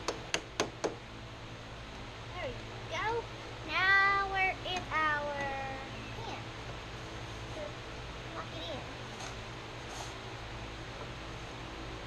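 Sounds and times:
high-pitched wordless vocals: 2.4 - 6.4.

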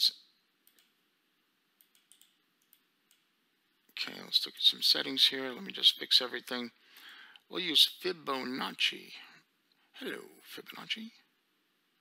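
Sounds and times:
faint computer mouse clicks: 0.6 - 1.0, 1.8 - 3.3.

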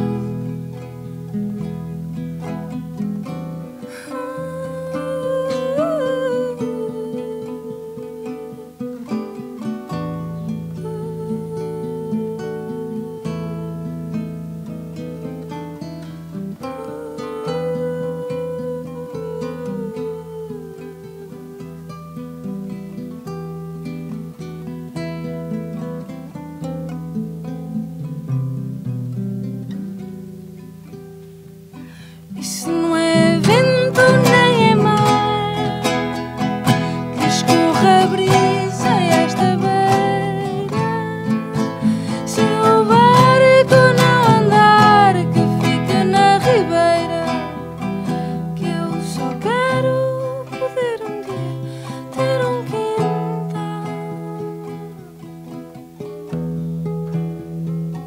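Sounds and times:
woman singing: 0.0 - 26.4, 31.7 - 56.3
acoustic guitar plucked: 0.0 - 58.0
small string instrument plucked: 0.0 - 58.0.

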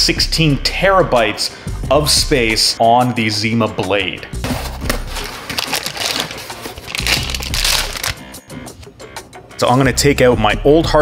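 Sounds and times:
foil bag crinkling: 4.6 - 8.3.

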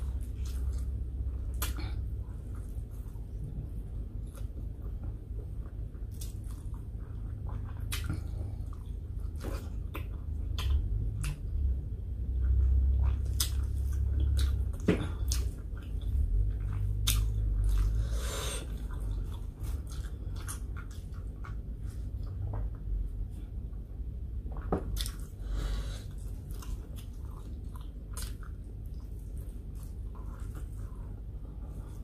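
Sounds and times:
chewing food: 0.0 - 32.0
wet mouth clicks and smacks: 7.8 - 8.2, 9.9 - 11.5, 13.0 - 15.6, 16.8 - 17.8.

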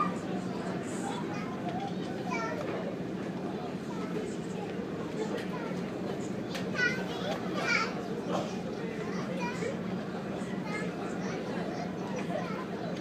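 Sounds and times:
children shouting and chattering: 0.0 - 13.0.

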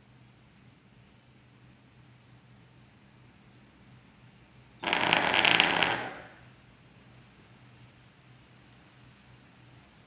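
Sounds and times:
vibrating collar buzzing on hard surface: 4.8 - 6.5.

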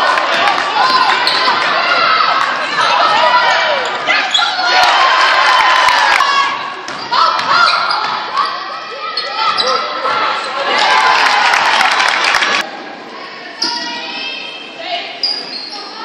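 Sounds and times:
players and spectators voices: 0.0 - 16.0.

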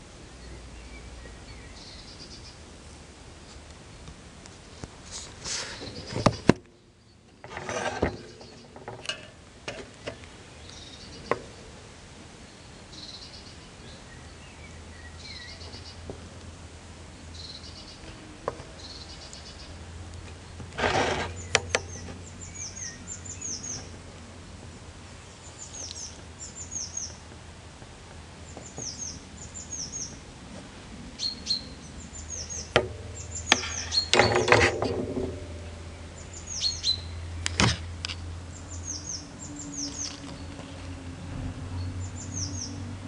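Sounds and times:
songbird singing: 0.0 - 43.0
sharp clicks and knocks: 6.0 - 10.3, 20.2 - 22.2
low hum: 30.9 - 43.0.

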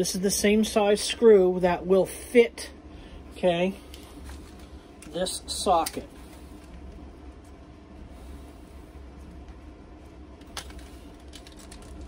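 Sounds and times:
low workshop hum: 0.0 - 12.0.

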